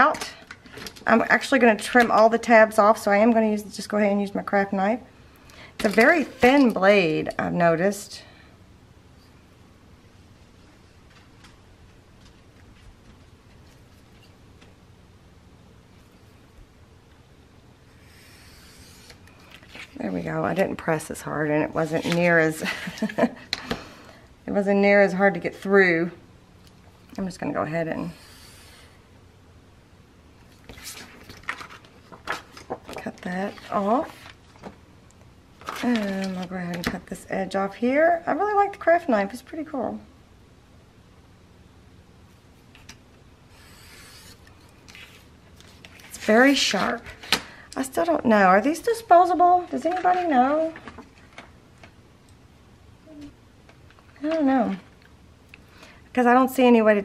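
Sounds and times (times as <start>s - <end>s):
craft knife slicing paper: 43.6s - 45.2s.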